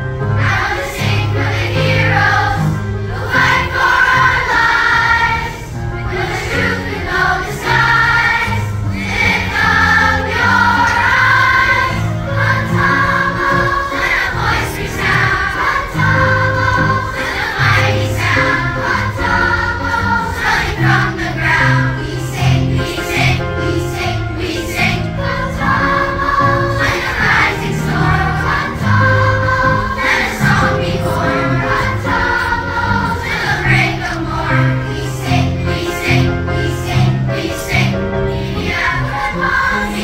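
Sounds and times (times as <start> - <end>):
children's choir singing: 0.0 - 40.0
low accompaniment: 0.4 - 34.6.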